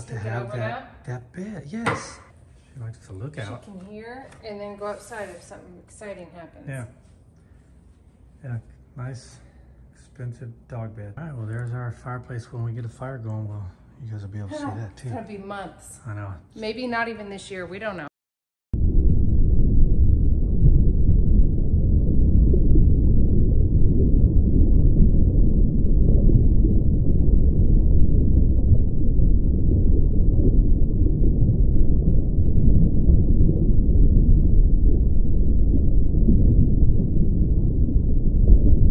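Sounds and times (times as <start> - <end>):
loud low rumbling: 18.8 - 38.9.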